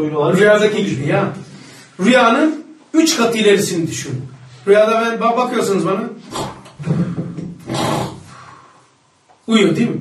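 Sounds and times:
breathy exhale: 0:06.3 - 0:09.0
man imitating snoring: 0:07.6 - 0:08.4.

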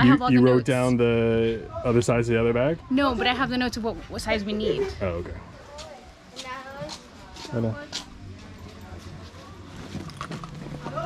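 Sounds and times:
backpack rustling: 0:09.2 - 0:11.0.

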